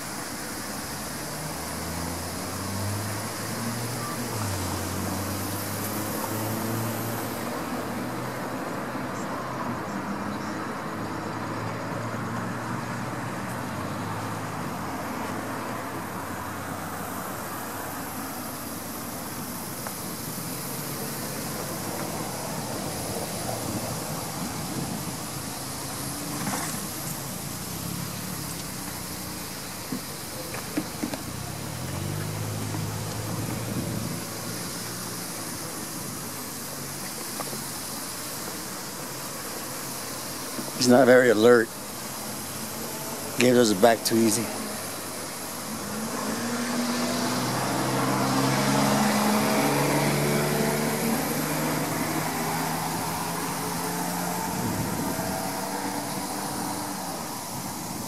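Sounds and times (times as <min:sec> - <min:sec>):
car engines and road traffic: 0:00.0 - 0:58.0.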